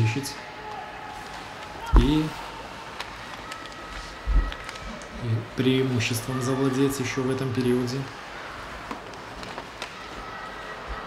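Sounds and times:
skates rushing on ice: 0.6 - 11.0
hockey sticks and puck clacking: 7.5 - 11.0.

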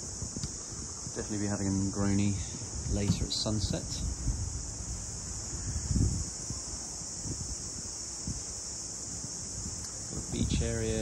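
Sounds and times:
insects droning: 0.0 - 11.0
wind rumbling on microphone: 0.0 - 11.0.

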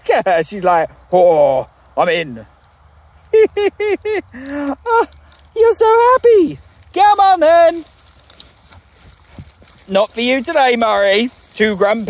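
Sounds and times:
footsteps through long grass: 2.2 - 3.4, 5.4 - 12.0
soft irregular ticks: 4.3 - 12.0.

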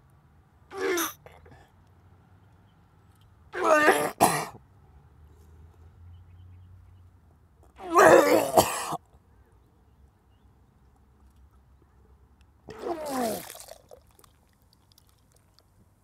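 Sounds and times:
man retching and vomiting: 0.7 - 1.2, 3.6 - 4.5, 7.8 - 9.0, 12.7 - 14.2.

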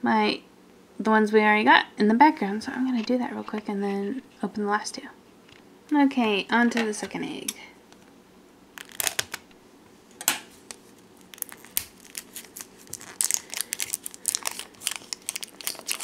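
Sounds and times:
plastic wrap crinkling: 8.7 - 9.5, 10.5 - 16.0
scissors snipping plastic: 11.4 - 16.0.

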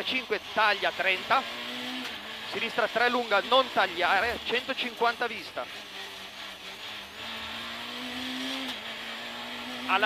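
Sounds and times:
car engine accelerating hard: 0.0 - 10.0.

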